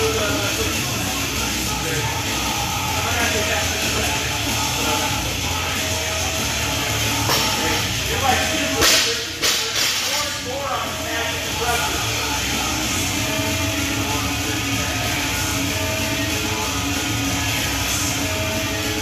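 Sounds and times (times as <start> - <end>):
gym background music: 0.0 - 19.0.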